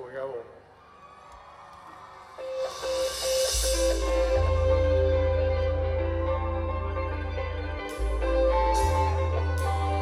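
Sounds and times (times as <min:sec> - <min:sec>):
live band music: 0:02.3 - 0:10.0.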